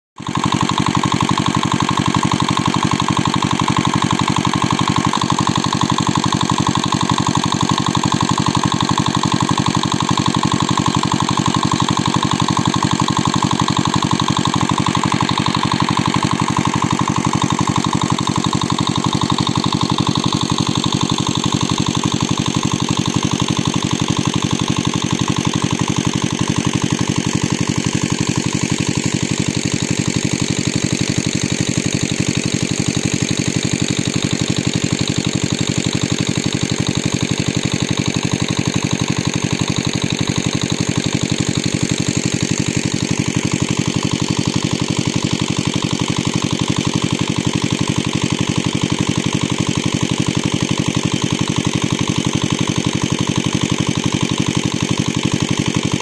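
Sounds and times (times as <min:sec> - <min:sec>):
small engine water pump running: 0:00.2 - 0:56.0
water pumping through hoses: 0:00.2 - 0:56.0.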